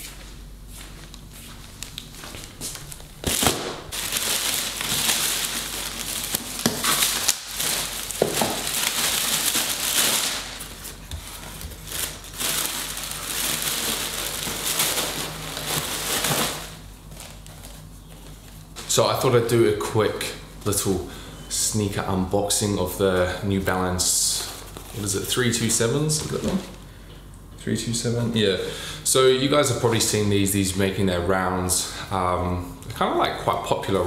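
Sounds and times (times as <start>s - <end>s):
plastic mailer bag crinkling: 1.6s - 19.0s, 24.0s - 26.8s.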